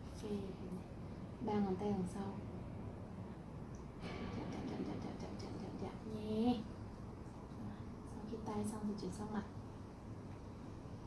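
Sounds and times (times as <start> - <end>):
woman speaking softly: 0.0 - 2.5, 4.5 - 6.7, 7.5 - 9.6
low steady rumble: 0.0 - 11.0.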